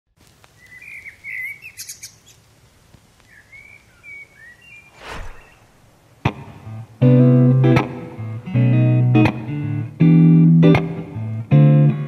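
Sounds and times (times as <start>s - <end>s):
birds chirping: 0.6s - 2.4s, 3.2s - 6.2s
brief whoosh: 4.9s - 6.1s.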